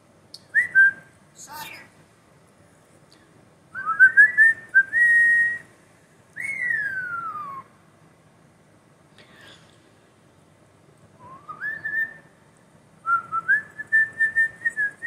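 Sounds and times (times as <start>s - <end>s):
starling whistling: 0.4s - 1.8s, 3.7s - 5.7s, 6.4s - 7.8s, 11.2s - 12.4s, 13.0s - 15.0s.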